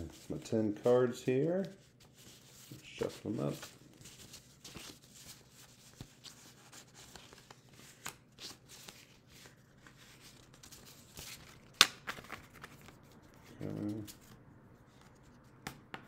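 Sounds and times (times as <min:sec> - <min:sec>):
cards being shuffled: 0:01.4 - 0:15.8.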